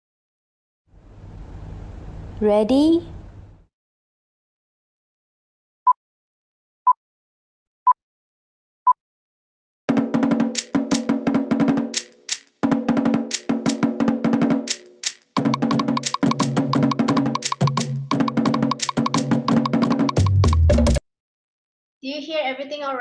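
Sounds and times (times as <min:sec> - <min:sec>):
deeper drum: 0:09.9 - 0:14.8, 0:15.4 - 0:21.0
fast wooden slit drums: 0:09.9 - 0:21.0.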